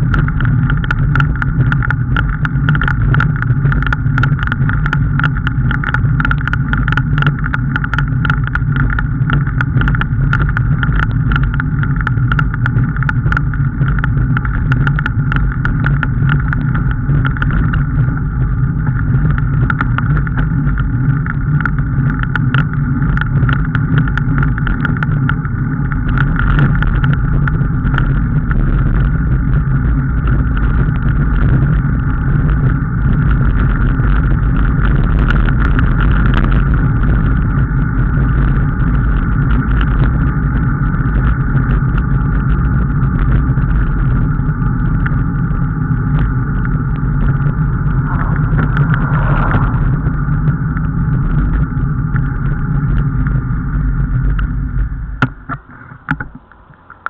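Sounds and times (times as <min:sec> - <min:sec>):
rumbling road travel noise: 0:00.0 - 0:57.0.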